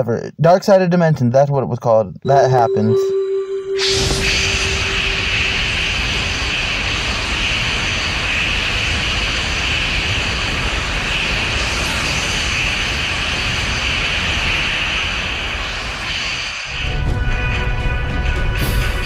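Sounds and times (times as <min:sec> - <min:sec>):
steady rushing energy noise: 0:03.1 - 0:17.2.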